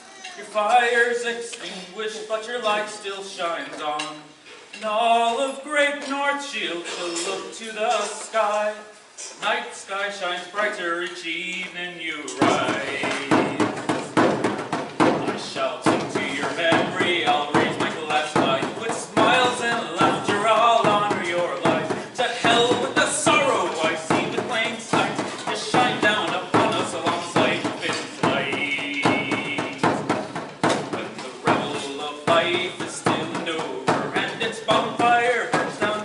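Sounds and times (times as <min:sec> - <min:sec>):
man singing: 0:00.3 - 0:36.0
frame drum rhythm: 0:12.2 - 0:36.0.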